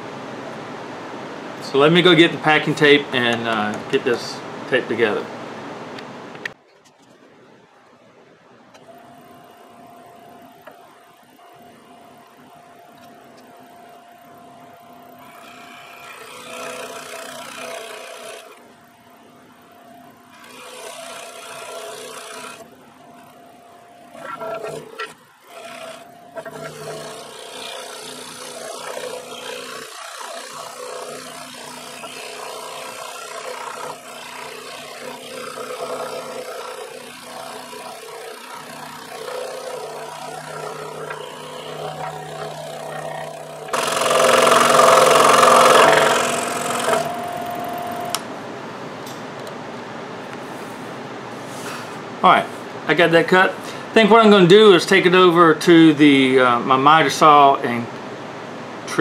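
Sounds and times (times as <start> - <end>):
scroll saw cutting wood: 15.1 - 18.7, 20.3 - 48.3.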